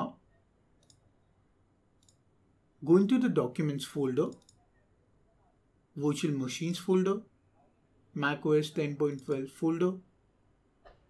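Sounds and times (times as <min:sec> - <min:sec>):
faint room hum: 0:00.0 - 0:11.0
computer mouse click: 0:00.8 - 0:01.1, 0:02.0 - 0:02.2, 0:04.2 - 0:04.6.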